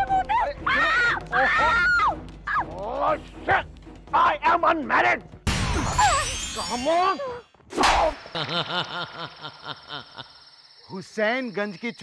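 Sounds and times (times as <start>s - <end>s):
shimmering sparkle chime: 5.7s - 7.4s, 9.2s - 12.0s.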